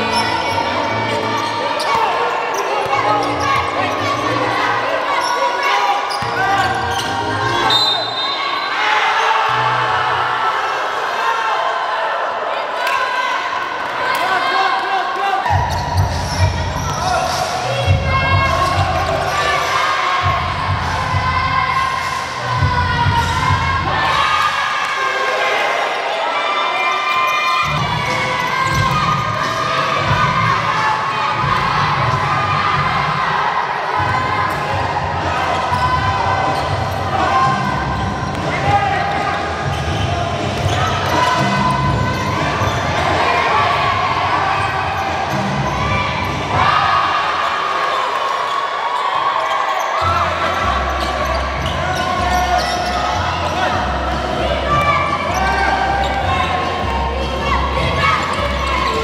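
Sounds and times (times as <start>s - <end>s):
murmur of voices: 0.0s - 59.0s.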